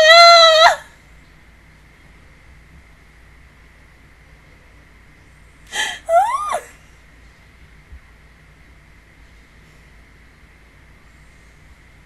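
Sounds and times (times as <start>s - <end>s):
woman gasping: 5.7s - 6.7s.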